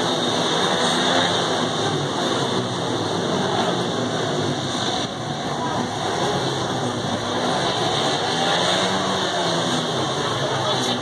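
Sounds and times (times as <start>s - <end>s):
motorcycle engines revving: 0.0s - 11.0s.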